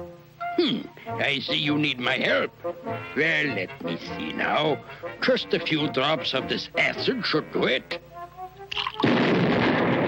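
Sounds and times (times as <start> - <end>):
cartoon explosion rumbling: 9.0 - 10.0.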